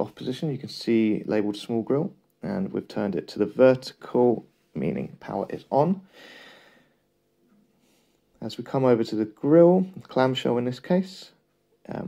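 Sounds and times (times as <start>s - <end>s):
person breathing softly: 6.0s - 7.1s, 7.8s - 8.3s.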